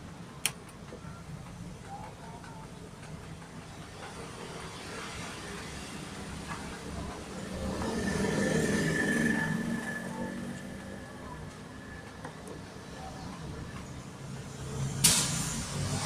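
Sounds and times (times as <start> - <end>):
vehicle engine rumbling: 6.1 - 16.0.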